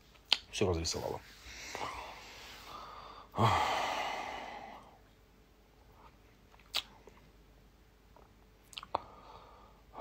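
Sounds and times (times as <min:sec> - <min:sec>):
man sighing: 0:01.7 - 0:05.0.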